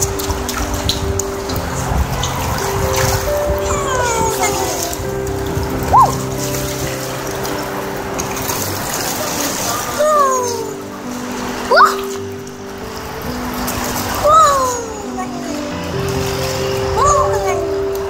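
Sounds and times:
music with long held notes: 0.0s - 18.0s
water splashing from thrashing fish: 0.0s - 18.0s.

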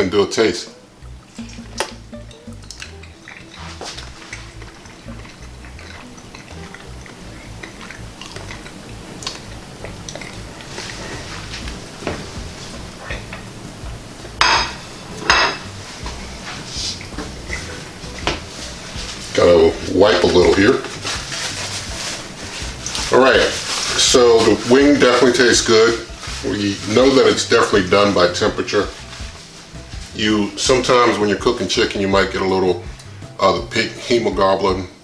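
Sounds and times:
plate and utensils clinking: 14.4s - 16.2s.

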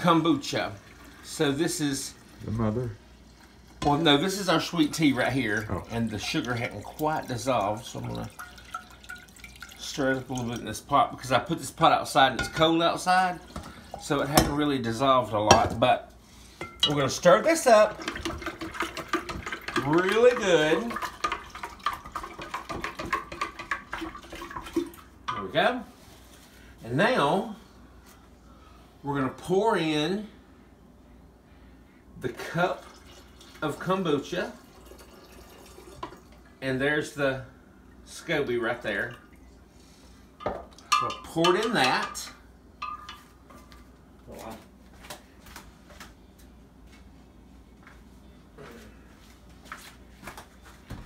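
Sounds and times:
low steady hum: 0.0s - 51.0s
liquid swirling: 3.0s - 10.8s, 16.8s - 25.1s.

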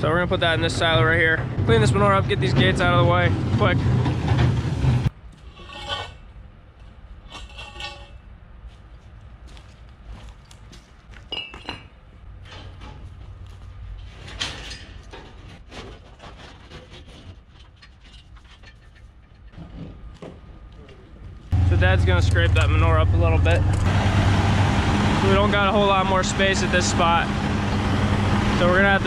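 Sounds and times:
steady low hum: 21.5s - 29.0s.

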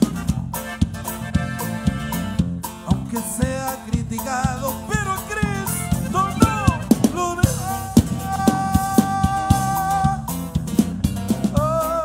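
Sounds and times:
saxophone: 0.0s - 2.5s, 5.6s - 10.3s
drum kit: 0.0s - 12.0s
man singing: 2.6s - 10.6s, 11.4s - 12.0s.

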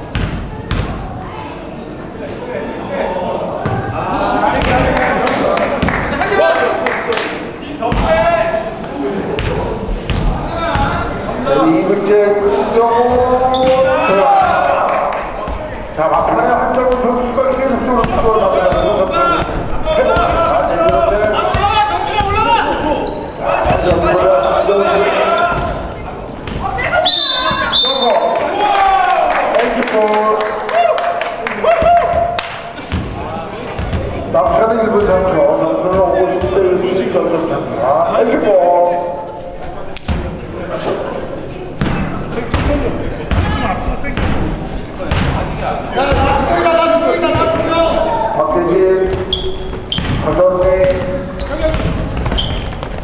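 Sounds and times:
people shouting and talking: 0.0s - 53.0s.

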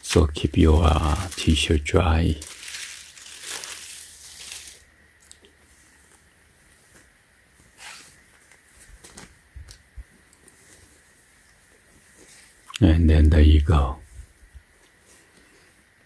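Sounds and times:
cloth and plastic packaging rustling: 0.0s - 12.7s.

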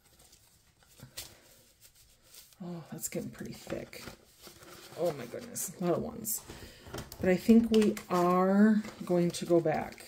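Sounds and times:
paper banknotes rustling: 0.0s - 6.0s, 7.3s - 10.0s.

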